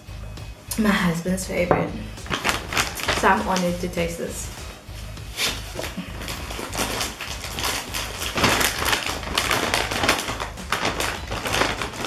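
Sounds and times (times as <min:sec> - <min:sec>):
plastic snack packet crinkling: 0:02.2 - 0:03.8, 0:05.8 - 0:12.0.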